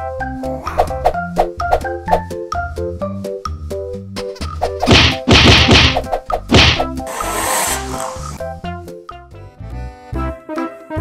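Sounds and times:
light background music: 0:00.0 - 0:11.0
loud slap-like whacks: 0:04.8 - 0:07.0.

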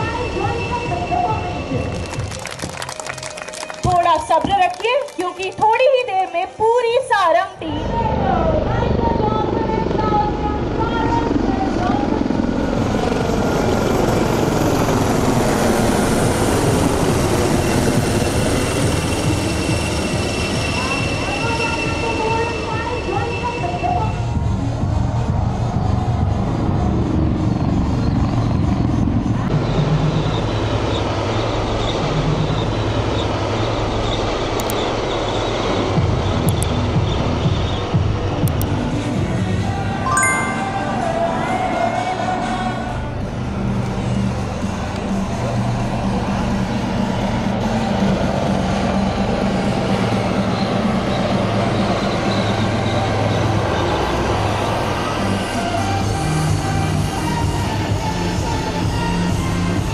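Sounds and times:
helicopters flying past: 0:07.6 - 0:40.0, 0:40.9 - 0:59.9
high steady tone: 0:40.1 - 0:41.2.

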